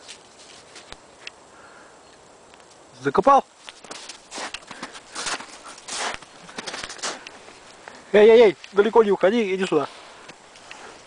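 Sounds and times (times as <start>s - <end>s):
snow crunching: 3.6s - 11.0s.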